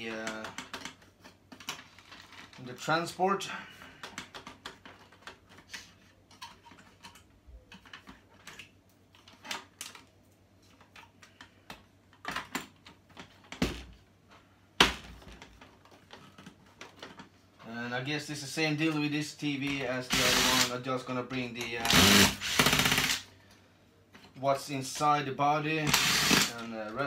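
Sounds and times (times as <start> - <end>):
cordless drill: 20.1 - 20.7, 21.8 - 23.3, 25.8 - 26.6.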